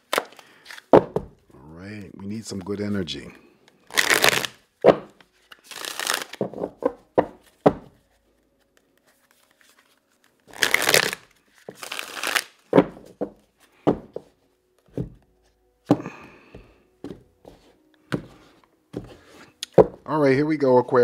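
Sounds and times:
cards being shuffled: 0:00.0 - 0:14.3
cards tapping: 0:03.9 - 0:08.0, 0:15.9 - 0:20.0.

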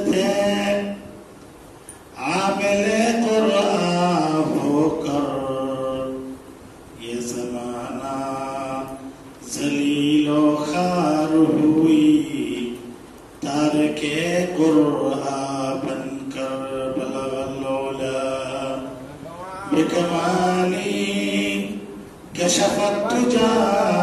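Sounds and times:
man chanting into a microphone: 0:00.0 - 0:01.2, 0:02.2 - 0:06.4, 0:07.0 - 0:24.0.

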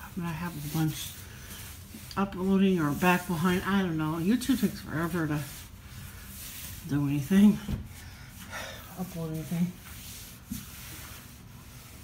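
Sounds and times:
rubbing on wooden tabletop: 0:00.0 - 0:12.0.

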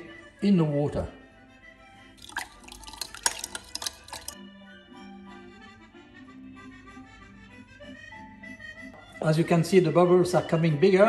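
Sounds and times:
light background music: 0:00.0 - 0:11.0
spoon clinking against glass bowl: 0:02.2 - 0:04.4.

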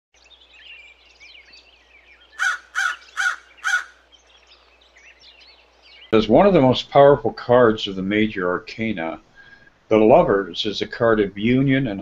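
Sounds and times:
small birds chirping: 0:00.2 - 0:06.4
crow cawing: 0:02.3 - 0:04.0.

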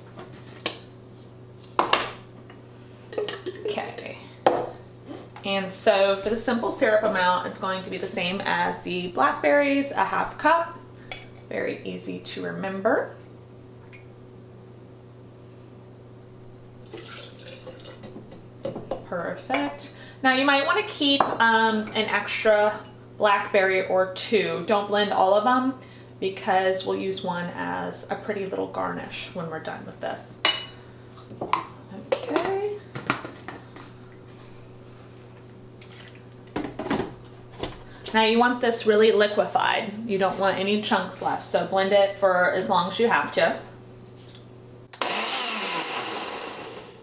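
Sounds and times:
syrup pouring and splashing: 0:16.8 - 0:18.0.

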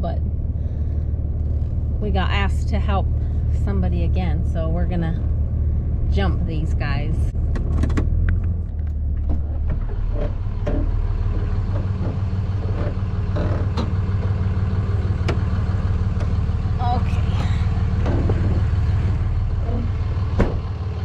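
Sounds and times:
vehicle engine humming: 0:00.0 - 0:21.0.

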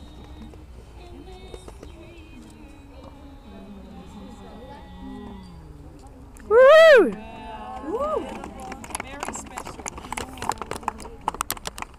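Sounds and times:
faint voices chattering: 0:00.0 - 0:11.9
people clapping: 0:07.0 - 0:11.9.

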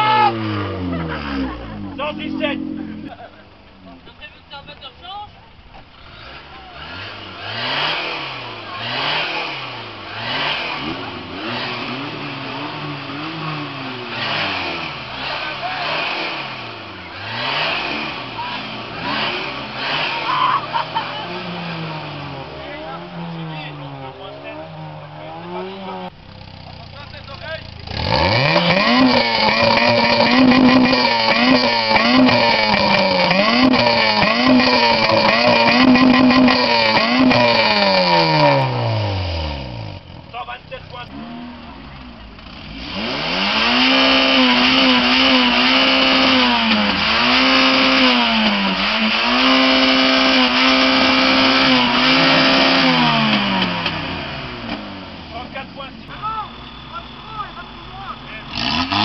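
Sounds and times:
car exhaust held at high revs: 0:00.0 - 0:03.6, 0:06.0 - 0:59.0
car engine revving through sport exhaust: 0:00.3 - 0:03.5, 0:05.9 - 0:59.0.

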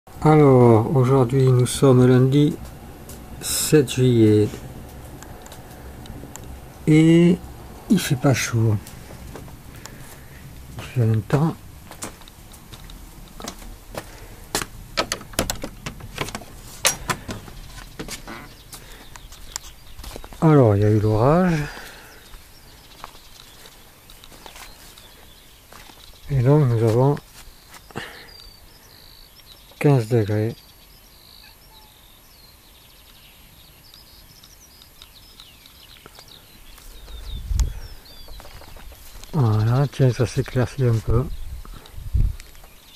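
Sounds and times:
small birds chirping: 0:00.2 - 0:42.9
metal door latch clicking: 0:15.0 - 0:17.5.

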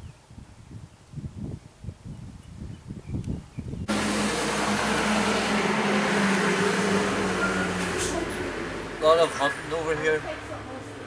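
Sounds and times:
motor droning: 0:03.9 - 0:08.9.

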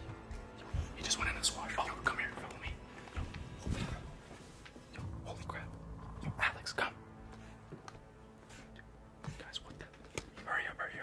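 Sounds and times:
whispering voices: 0:09.4 - 0:11.0.

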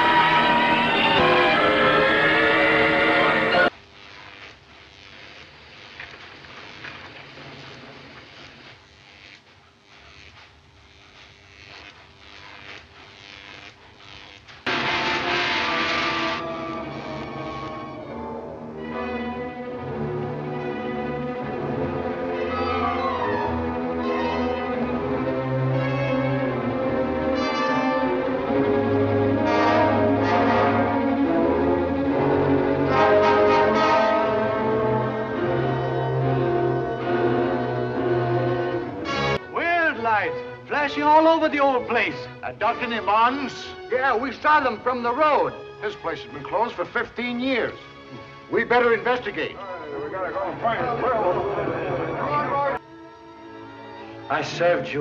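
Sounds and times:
orchestral music with brass: 0:00.0 - 0:03.7, 0:14.8 - 0:55.0
film soundtrack hiss: 0:00.0 - 0:55.0.

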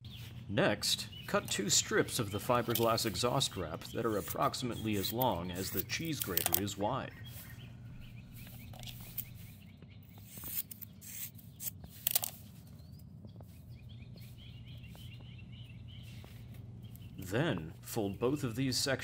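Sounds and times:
birds chirping faintly: 0:00.0 - 0:19.0
low steady hum: 0:00.0 - 0:19.0.

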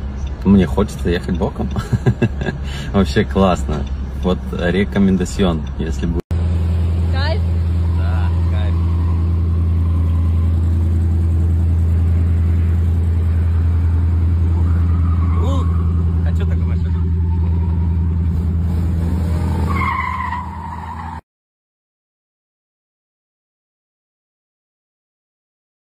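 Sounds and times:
car engine idling: 0:00.0 - 0:19.8.

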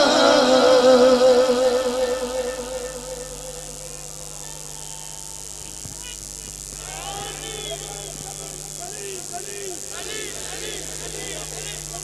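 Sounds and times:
faint crowd voices: 0:00.0 - 0:12.0
low electrical hum: 0:00.0 - 0:12.0
steady high hiss: 0:00.0 - 0:12.0.

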